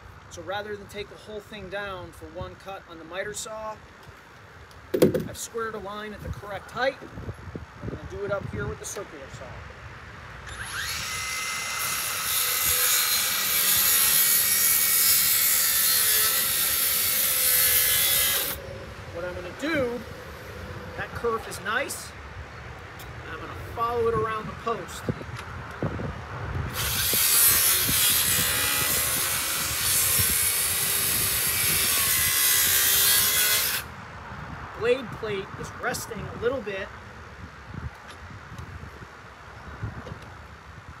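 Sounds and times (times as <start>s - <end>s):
wind rumble on microphone: 4.9s - 10.3s, 22.2s - 41.0s
circular saw cutting wood: 10.4s - 18.6s, 26.7s - 33.9s.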